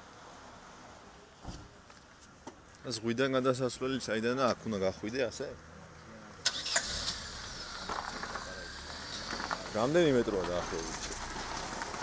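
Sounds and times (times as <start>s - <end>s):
car engine starting click: 6.4s - 8.1s
car engine running rumble: 6.4s - 12.0s.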